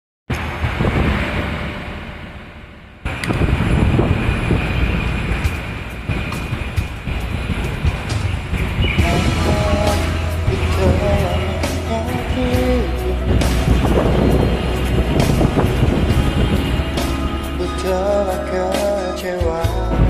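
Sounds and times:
heavy rumbling background noise: 0.3s - 20.0s
karaoke pop ballad backing track: 7.8s - 20.0s.

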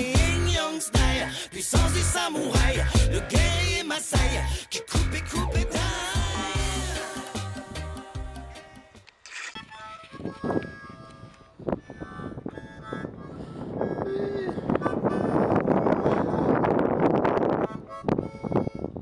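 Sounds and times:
background music: 0.0s - 9.1s
wind rushing on microphone: 9.6s - 19.0s.

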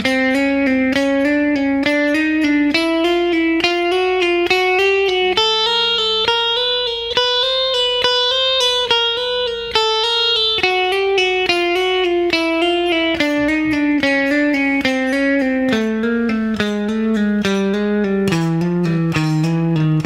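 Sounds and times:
clean electric guitar notes: 0.0s - 20.0s.

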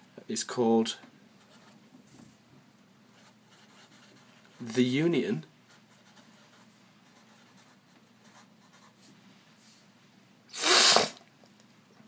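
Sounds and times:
breathy noise burst: 10.5s - 11.2s.

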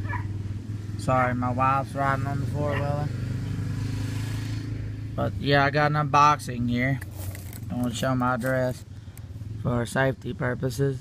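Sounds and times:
atv engine running: 0.0s - 11.0s.

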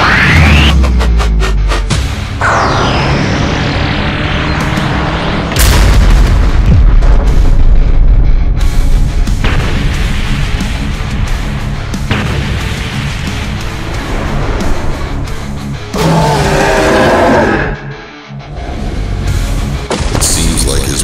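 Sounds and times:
dramatic background music: 0.0s - 21.0s
deep boom with low rumble: 5.5s - 14.9s.

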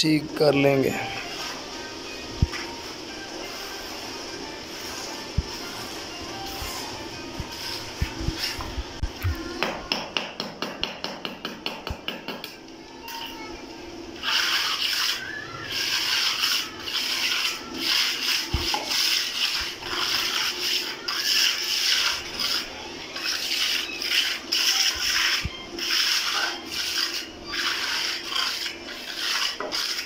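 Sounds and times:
trowel scraping wet cement: 14.2s - 30.0s.

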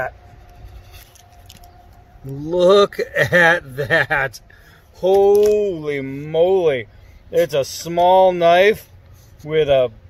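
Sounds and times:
cardboard tube scraping: 0.0s - 2.0s.

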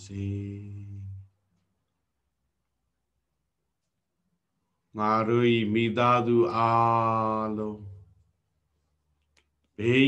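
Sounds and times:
man chanting on held pitch: 4.9s - 8.1s, 9.8s - 10.0s.

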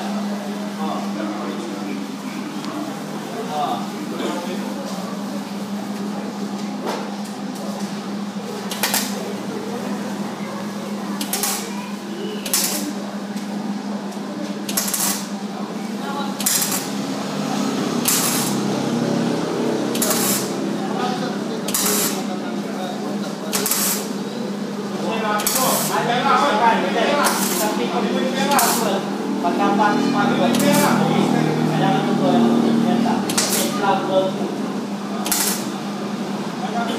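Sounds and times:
steady low hum: 0.0s - 36.9s
welding arc crackling: 8.6s - 9.5s, 11.2s - 11.8s, 12.4s - 13.0s, 14.7s - 15.4s, 16.3s - 22.4s, 23.5s - 31.8s, 32.9s - 33.8s, 35.2s - 36.1s.

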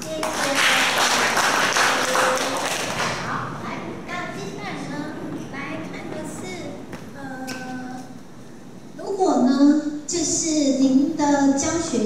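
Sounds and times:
audience applauding: 0.0s - 3.3s
voices: 0.0s - 12.0s.

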